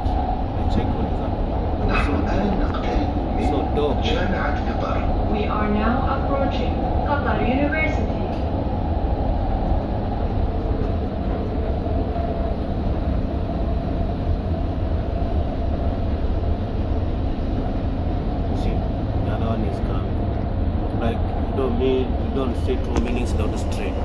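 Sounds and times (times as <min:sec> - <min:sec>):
train wheels rumbling on rail: 0:00.0 - 0:24.0.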